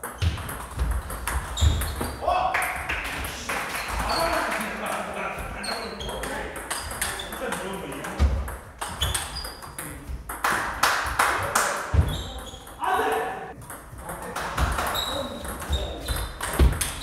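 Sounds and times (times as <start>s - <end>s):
table tennis balls clicking: 0.0s - 2.1s, 5.7s - 10.8s, 13.5s - 17.0s.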